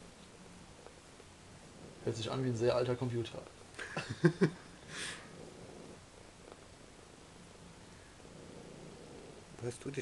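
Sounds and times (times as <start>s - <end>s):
cat purring: 0.4s - 3.6s, 4.6s - 10.0s.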